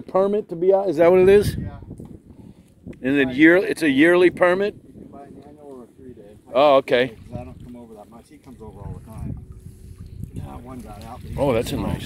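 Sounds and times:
wind rumbling on microphone: 0:01.0 - 0:12.0.

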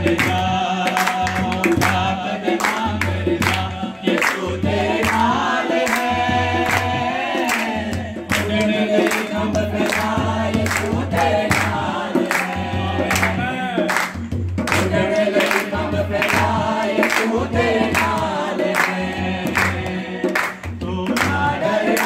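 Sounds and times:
congregation singing: 0:00.0 - 0:22.0
drum beat: 0:00.0 - 0:22.0
hand clapping: 0:00.0 - 0:22.0.

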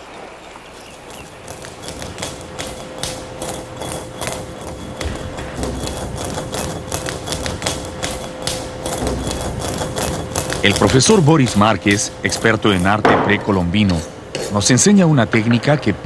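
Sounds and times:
steady hum: 0:00.7 - 0:16.0.

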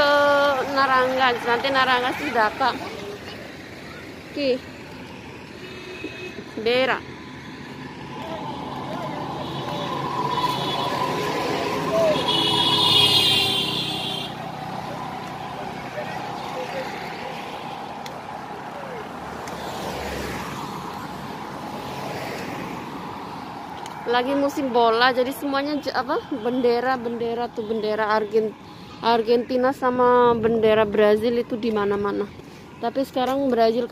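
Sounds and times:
vehicle passing: 0:00.0 - 0:33.2
steady traffic noise: 0:00.0 - 0:33.9
high-pitched horn: 0:09.4 - 0:14.4.

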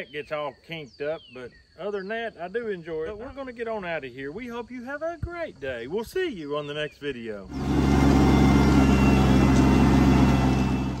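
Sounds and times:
tractor engine running: 0:07.5 - 0:11.0.

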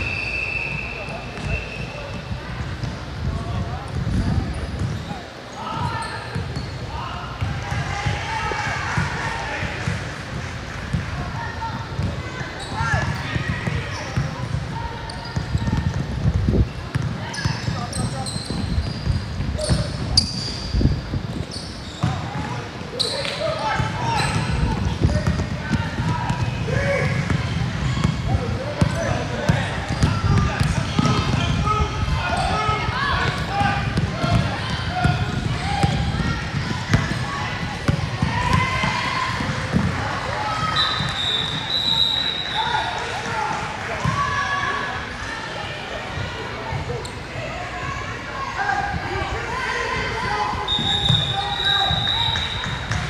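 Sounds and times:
indistinct shouting and chatter: 0:00.0 - 0:53.0.

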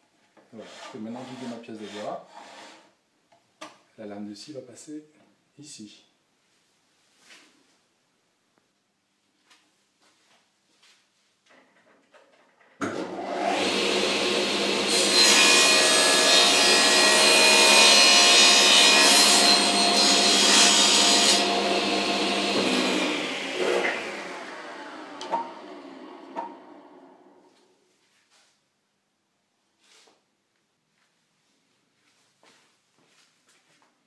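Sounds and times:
table saw running: 0:12.8 - 0:27.4.

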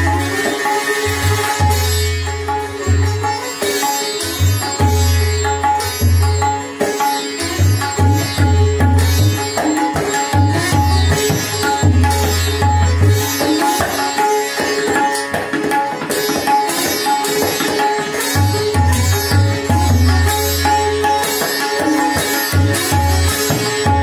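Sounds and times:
plucked sitar melody: 0:00.0 - 0:24.0
tabla drumming: 0:00.0 - 0:24.0.

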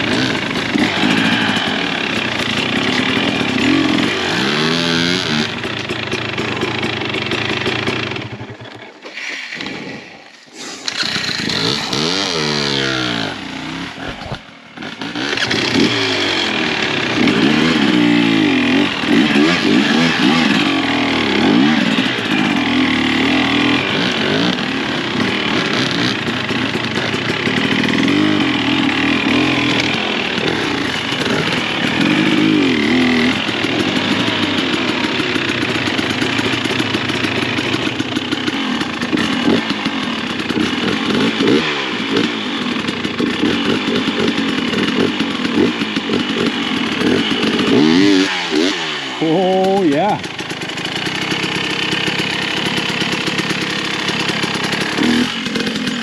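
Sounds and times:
second dirt bike running: 0:00.0 - 0:09.0, 0:10.8 - 0:56.0
dirt bike engine revving: 0:00.0 - 0:56.0.

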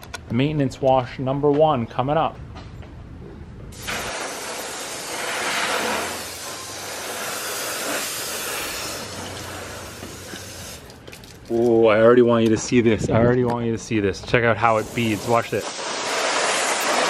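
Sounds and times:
hose nozzle spraying water: 0:03.7 - 0:11.7, 0:14.6 - 0:17.0.

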